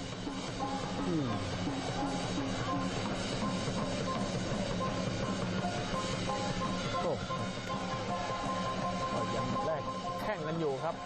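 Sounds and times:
crowd noise: 5.8s - 10.0s.

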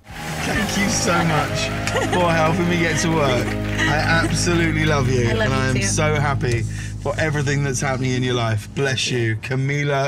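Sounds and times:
car driving on street: 0.0s - 10.0s
man's voice: 0.4s - 10.0s.

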